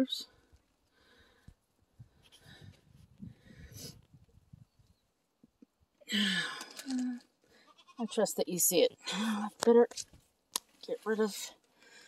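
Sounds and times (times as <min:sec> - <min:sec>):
goat bleating: 0:07.6 - 0:08.3.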